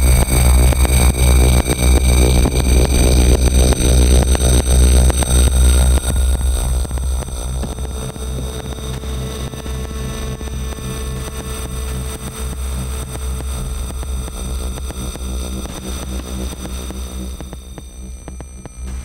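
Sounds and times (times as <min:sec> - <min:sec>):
heavy low rumble: 0:00.0 - 0:19.0
pulsing throb: 0:00.0 - 0:19.0.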